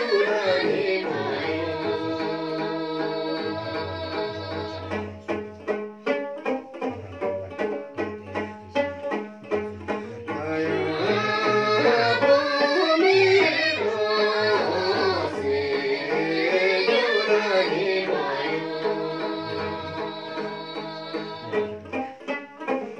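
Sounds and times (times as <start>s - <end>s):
women singing together: 0.0s - 4.9s, 10.3s - 21.6s
strummed long-necked lute: 0.0s - 22.9s.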